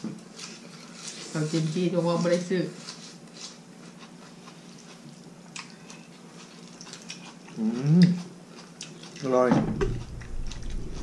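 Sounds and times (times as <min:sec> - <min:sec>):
person humming mm: 0:07.6 - 0:08.2
steady low hum: 0:09.5 - 0:11.0.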